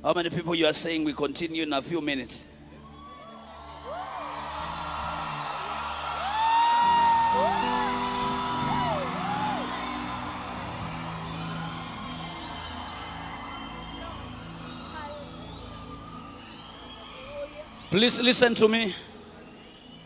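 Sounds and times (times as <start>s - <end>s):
congregation chattering and cheering: 2.6s - 20.0s
long whoops: 2.8s - 17.3s.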